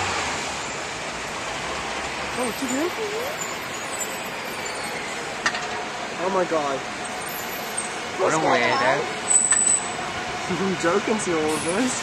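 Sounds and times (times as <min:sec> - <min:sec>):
bus driving past: 0:00.0 - 0:12.0
road traffic noise: 0:00.0 - 0:12.0.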